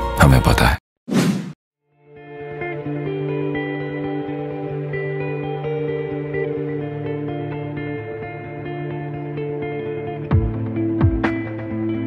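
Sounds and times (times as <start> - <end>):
short whoosh: 1.1 - 1.6.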